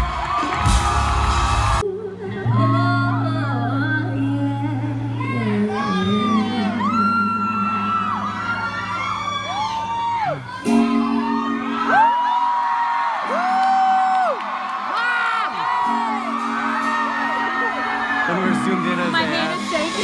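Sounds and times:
fans whooping: 0:00.0 - 0:01.8, 0:05.7 - 0:20.0
electric guitar: 0:00.0 - 0:20.0
woman singing long notes: 0:01.8 - 0:08.5.

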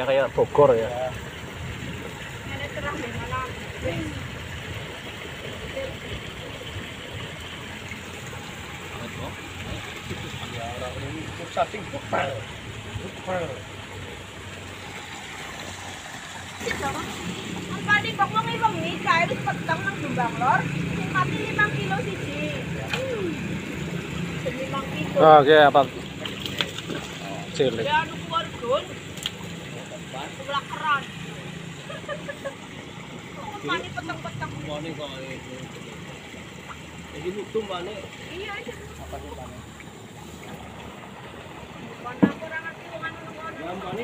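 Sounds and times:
low motor hum: 0:00.0 - 0:44.0.

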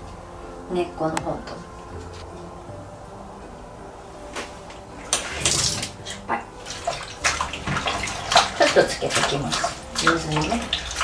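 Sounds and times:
water splashing in a bowl: 0:05.1 - 0:11.0.

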